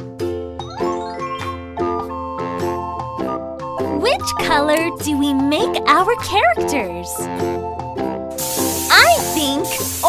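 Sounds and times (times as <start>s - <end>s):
children's background music: 0.0s - 10.0s
cartoon spray-paint hiss: 8.4s - 10.0s.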